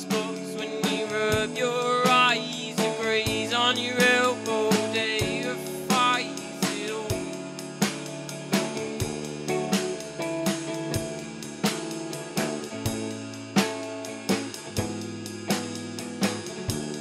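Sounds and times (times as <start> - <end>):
drum kit beat: 0.0 - 17.0
electric guitar chords: 0.0 - 17.0.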